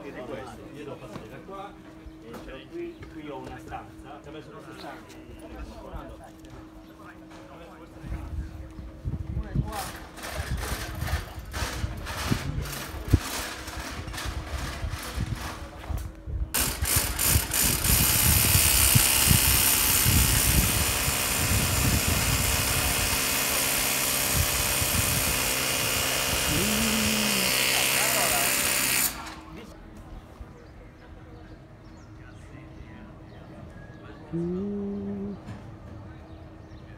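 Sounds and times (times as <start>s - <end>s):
air blower whirring: 16.6s - 29.4s.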